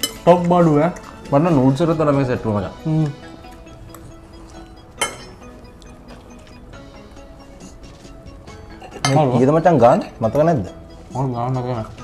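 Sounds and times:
metal cutlery clinking on plate: 0.0s - 1.3s, 5.0s - 5.5s, 8.7s - 10.6s
soft background music: 0.0s - 12.0s.

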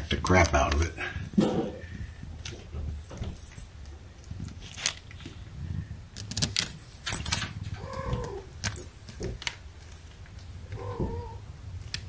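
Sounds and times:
kittens scrambling over plush toy: 0.5s - 5.4s, 6.2s - 11.4s
kitten mewing: 7.8s - 8.5s, 10.7s - 11.4s.

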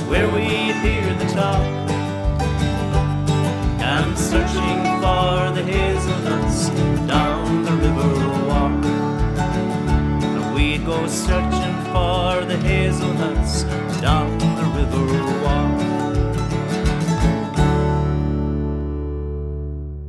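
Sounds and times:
acoustic folk band playing: 0.0s - 19.7s.

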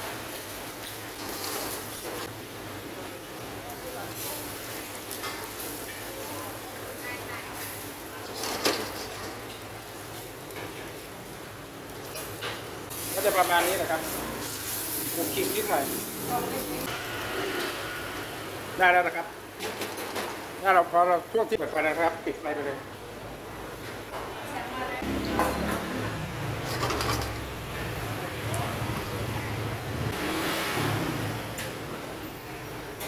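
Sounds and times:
rice sizzling in a hot pan: 3.7s - 8.1s, 12.9s - 18.4s.

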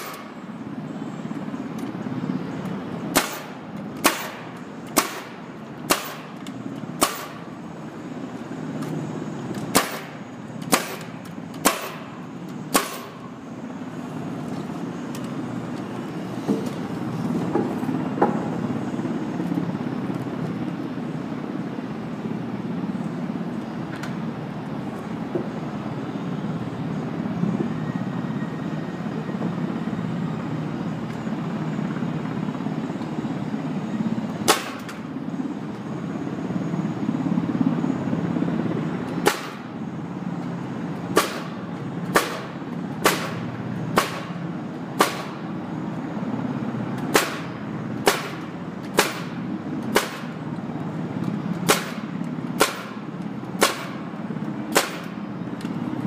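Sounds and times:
nail gun shots into timber: 3.1s - 6.4s, 7.0s - 7.4s, 9.6s - 12.1s, 12.7s - 13.2s, 34.5s - 35.0s, 39.2s - 39.6s, 41.1s - 43.4s, 44.0s - 44.3s, 45.0s - 45.4s, 47.1s - 50.4s, 51.6s - 53.0s, 53.6s - 54.0s, 54.7s - 55.2s.

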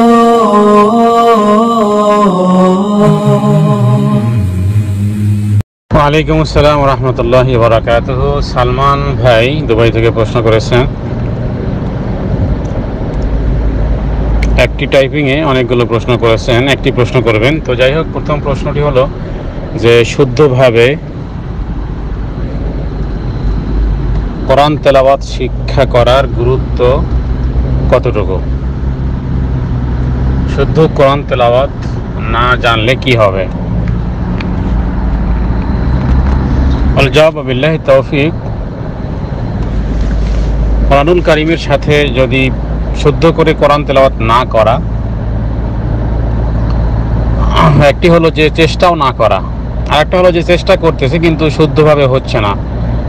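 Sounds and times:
man's voice: 0.0s - 4.5s
low hum: 0.0s - 9.8s, 18.0s - 30.4s
man speaking: 30.5s - 33.5s, 47.4s - 52.6s.

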